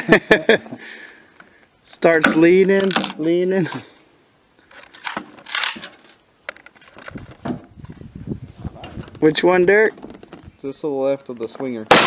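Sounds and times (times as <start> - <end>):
rifle bolt clicks and scrape: 4.6 - 7.4.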